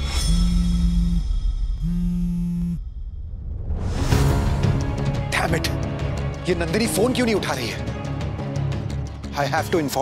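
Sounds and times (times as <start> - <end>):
smartphone vibrating buzz: 0.3 - 2.8
low background music: 3.8 - 10.0.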